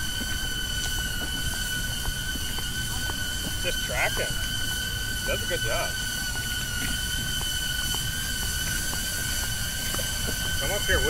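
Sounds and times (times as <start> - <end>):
drone propeller whine: 0.0 - 11.0.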